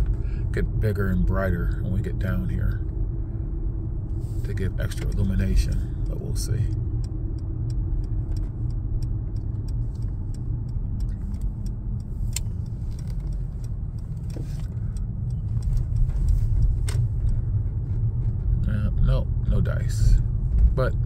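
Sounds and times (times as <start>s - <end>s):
low engine and road rumble: 0.0s - 21.0s.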